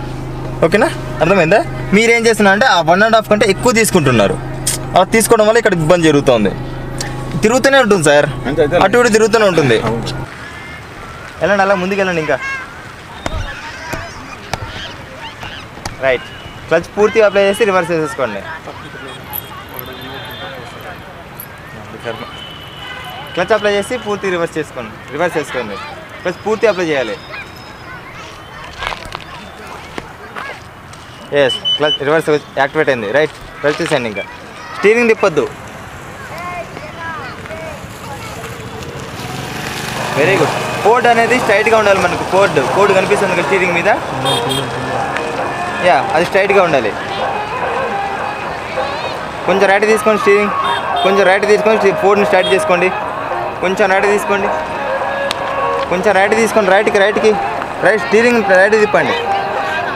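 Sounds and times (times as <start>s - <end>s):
vehicle engine running: 0.0s - 10.4s, 35.6s - 49.3s
faint voices: 0.0s - 32.3s, 33.2s - 59.9s.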